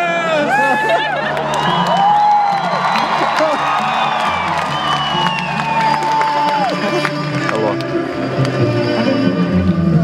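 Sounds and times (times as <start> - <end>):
crowd cheering: 0.0 - 7.9
amplified cellos playing: 1.6 - 10.0.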